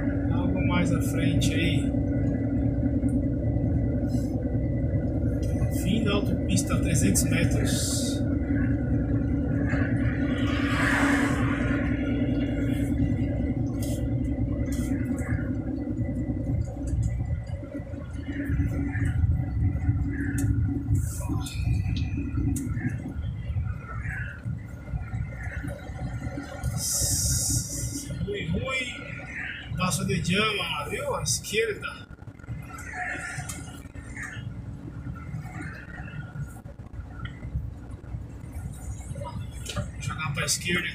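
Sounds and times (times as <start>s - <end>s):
road rumble: 0.0s - 40.9s
truck engine droning: 0.0s - 40.9s.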